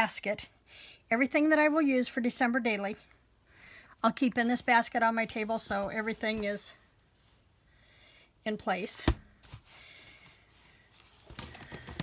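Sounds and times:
items moved in a basket: 0:09.4 - 0:12.0.

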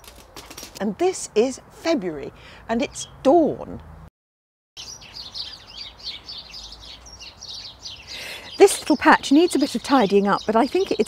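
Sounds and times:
small birds chirping: 0:04.8 - 0:11.0.

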